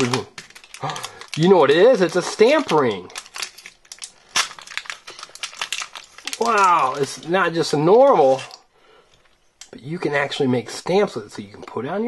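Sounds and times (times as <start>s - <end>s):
plastic wrapper crinkling: 0.0s - 9.8s.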